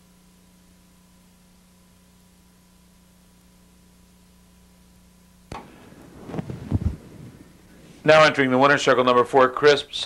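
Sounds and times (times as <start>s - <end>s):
faint electrical hum: 0.0s - 10.0s
low thumps on microphone: 5.5s - 8.1s
microphone click: 5.5s - 8.1s
microphone handling rustle: 5.5s - 8.3s.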